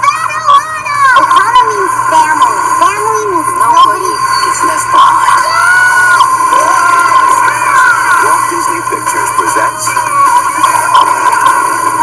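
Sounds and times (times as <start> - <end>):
high-pitched whine: 1.0 - 12.0.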